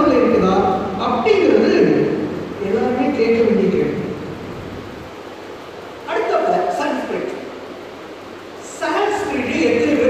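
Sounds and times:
background room hiss: 0.0s - 10.0s.

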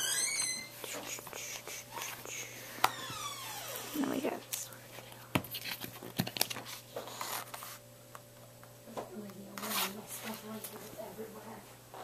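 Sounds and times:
person whispering: 0.8s - 2.7s, 4.0s - 5.4s.

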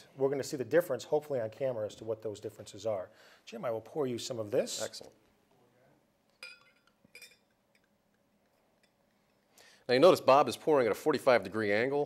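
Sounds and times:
glass clinks: 6.4s - 7.9s.

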